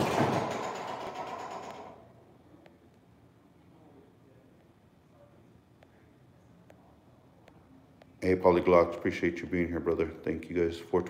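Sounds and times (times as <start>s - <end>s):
reverberating door slam: 0.0s - 2.0s.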